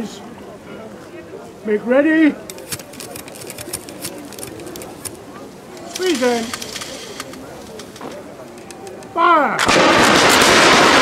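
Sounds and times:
faint clicks: 2.5 - 9.2.

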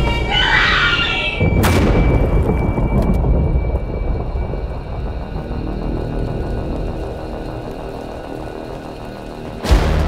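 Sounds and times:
woman screaming: 0.0 - 1.4
loud low rumble: 1.4 - 10.0.

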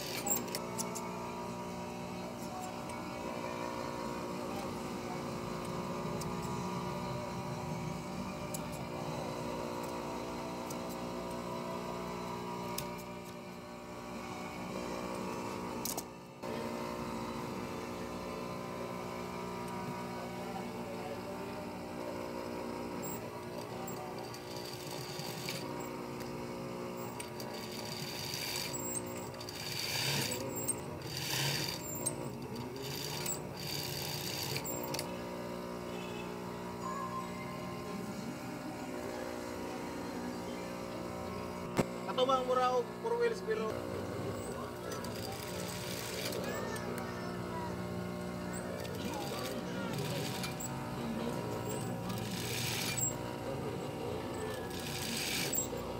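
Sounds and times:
sewing machine stitching: 0.0 - 1.0, 22.1 - 35.2, 44.2 - 47.0, 48.1 - 55.9.

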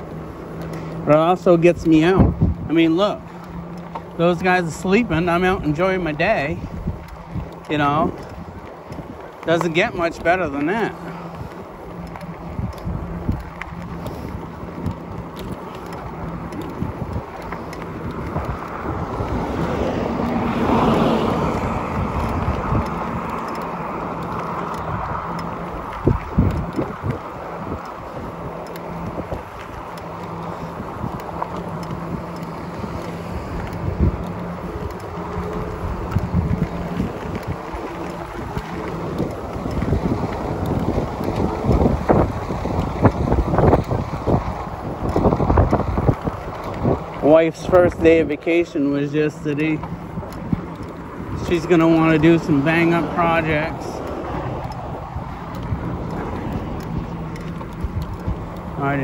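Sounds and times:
wind buffeting microphone: 0.0 - 59.0.

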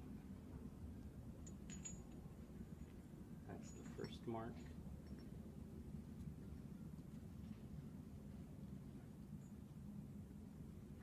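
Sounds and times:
light metallic clinks: 1.4 - 5.6.

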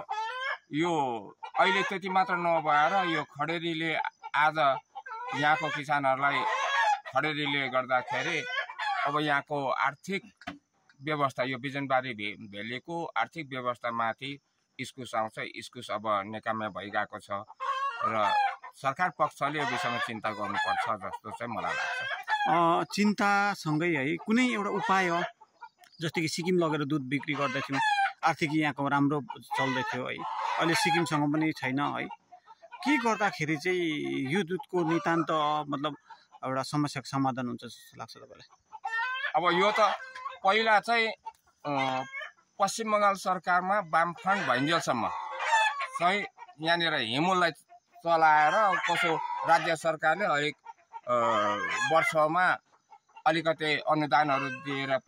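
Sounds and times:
loud fowl call: 0.0 - 3.4, 4.3 - 9.4, 17.6 - 18.8, 19.4 - 25.3, 27.2 - 28.9, 29.6 - 32.1, 32.8 - 35.5, 41.7 - 42.2, 44.3 - 46.3, 48.4 - 49.8, 51.1 - 52.2
chickens clucking: 0.0 - 55.0
man speaking: 0.7 - 6.6, 7.2 - 8.5, 9.1 - 17.4, 18.0 - 25.3, 25.9 - 32.1, 32.9 - 38.4, 39.4 - 45.1, 46.0 - 50.5, 51.1 - 52.6, 53.3 - 55.0
man talking: 0.7 - 8.5, 9.1 - 25.3, 25.9 - 32.1, 32.9 - 38.4, 39.4 - 45.2, 45.9 - 50.5, 51.1 - 52.6, 53.3 - 55.0.

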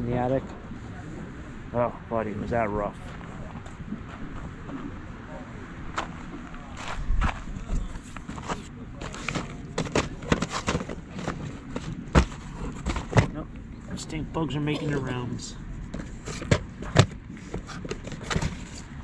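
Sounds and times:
plastic tape cases clacking: 8.3 - 13.4.

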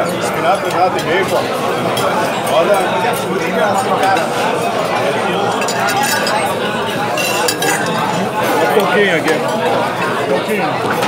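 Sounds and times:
voices talking: 0.0 - 11.0
cutlery and dishes clinking: 4.0 - 9.6.

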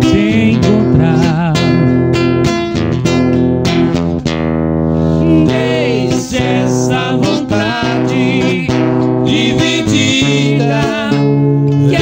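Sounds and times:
man singing: 0.0 - 2.0, 5.2 - 12.0
acoustic guitar strummed: 0.0 - 12.0.

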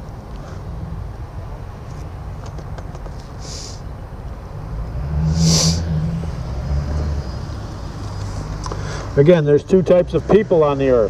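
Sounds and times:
short hiss: 3.3 - 3.9, 5.2 - 5.8.

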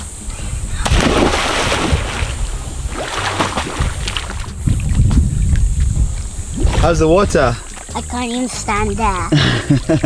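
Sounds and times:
wind buffeting microphone: 0.0 - 7.7
water splashing in pool: 0.8 - 4.6.

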